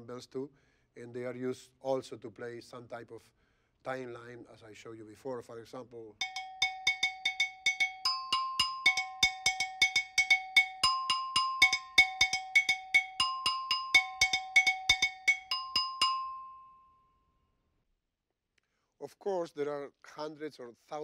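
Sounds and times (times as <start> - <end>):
double bell struck with stick: 6.2 - 16.8.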